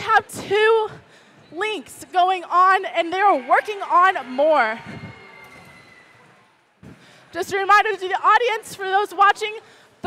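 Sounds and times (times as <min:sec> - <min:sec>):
faint hall background noise: 0:00.0 - 0:10.0.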